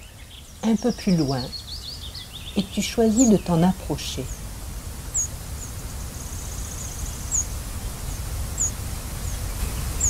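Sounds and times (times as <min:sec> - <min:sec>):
bird chirping: 0:00.0 - 0:04.5, 0:05.1 - 0:10.0
bird trill: 0:05.1 - 0:05.7.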